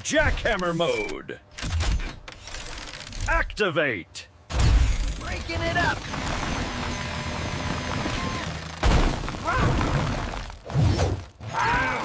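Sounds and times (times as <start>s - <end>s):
earth breaking apart crashes: 8.8s - 10.7s.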